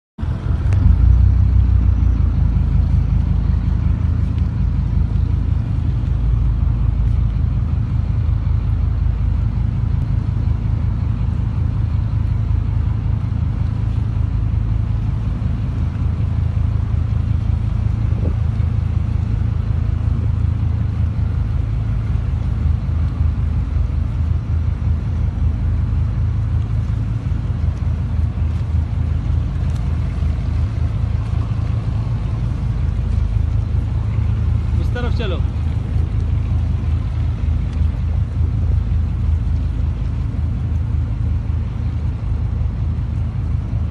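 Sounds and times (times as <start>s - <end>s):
boat engine rumbling: 0.2s - 43.9s.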